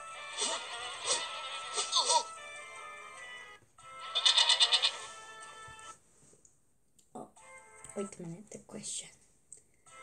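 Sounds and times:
soft background music: 0.0 - 10.0
cartoon goat bleat: 4.1 - 5.1.

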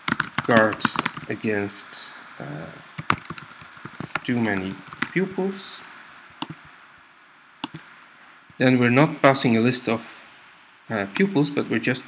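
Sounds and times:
faint room tone hiss: 0.0 - 12.0
mouse clicks: 6.4 - 6.7, 7.6 - 7.9.

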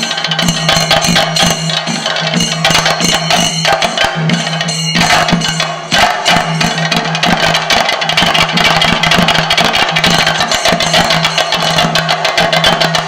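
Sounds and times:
fast drums: 0.0 - 13.0
small hand cymbals: 0.0 - 13.0.

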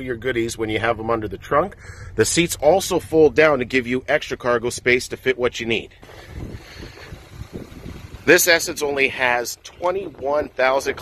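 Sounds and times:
wind buffeting microphone: 6.0 - 11.0.

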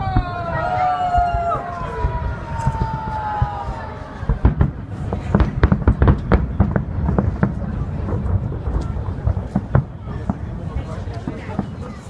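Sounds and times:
fireworks crackling and popping: 0.0 - 12.0.

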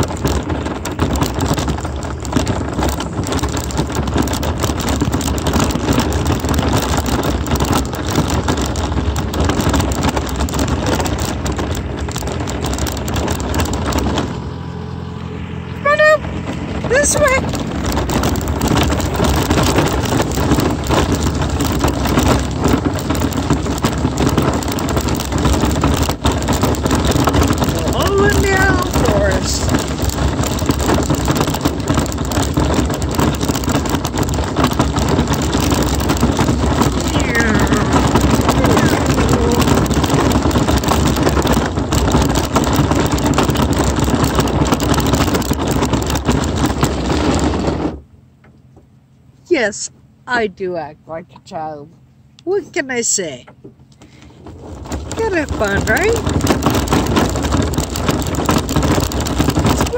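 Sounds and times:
vehicle rolling on gravel: 0.0 - 59.9.

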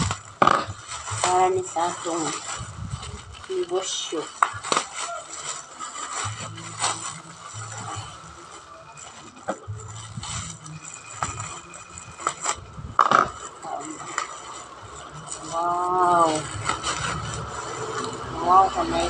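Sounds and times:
plastic wrapping crinkling: 0.0 - 19.0.

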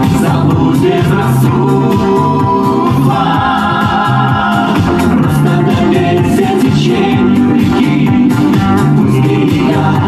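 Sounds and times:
pop song by mixed vocal group: 0.0 - 10.0
steady beat: 0.0 - 10.0.

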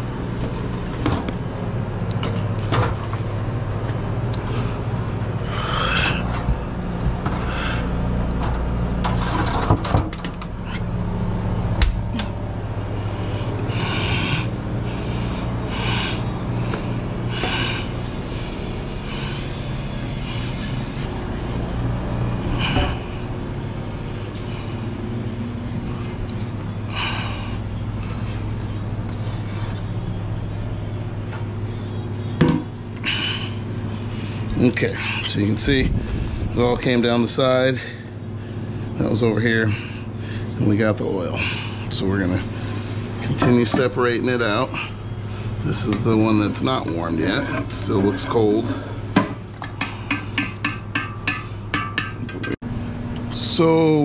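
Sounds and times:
kitchen equipment hum: 0.0 - 54.0.

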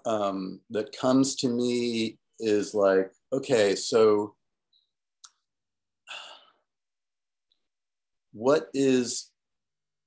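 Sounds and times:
man sighing: 6.1 - 6.5.

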